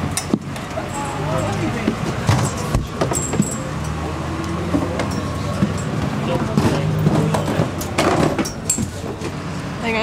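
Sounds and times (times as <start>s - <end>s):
bus engine hum: 0.0s - 10.0s
clicks and knocks of people moving: 0.0s - 10.0s.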